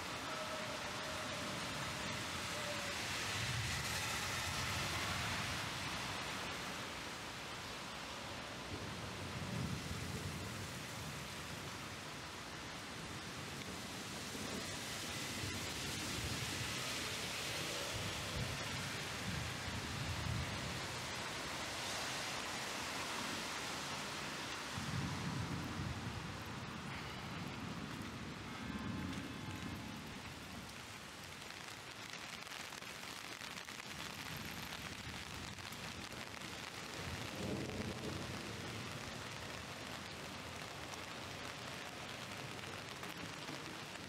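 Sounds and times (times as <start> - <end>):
heavy rain hiss: 0.0 - 44.0.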